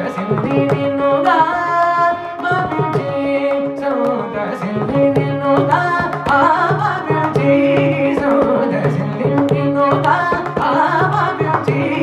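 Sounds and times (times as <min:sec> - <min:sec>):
mridangam strokes: 0:00.0 - 0:12.0
person singing: 0:00.0 - 0:12.0
violin melody: 0:00.0 - 0:12.0.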